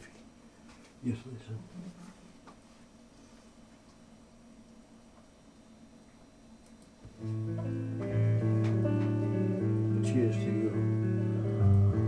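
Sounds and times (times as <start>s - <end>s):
bass guitar held notes: 7.2s - 12.0s
electric guitar playing: 7.2s - 12.0s.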